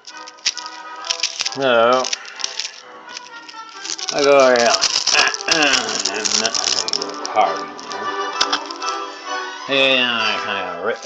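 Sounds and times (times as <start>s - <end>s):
knife piercing plastic film: 0.0s - 9.1s
faint background music: 0.0s - 11.0s.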